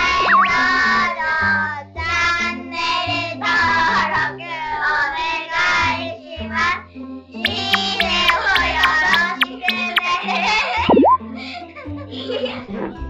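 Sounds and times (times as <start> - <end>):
stepping bass line: 0.0 - 0.7, 7.4 - 10.0, 10.8 - 11.2
sung melody: 0.0 - 0.8, 7.4 - 10.0, 10.9 - 11.2.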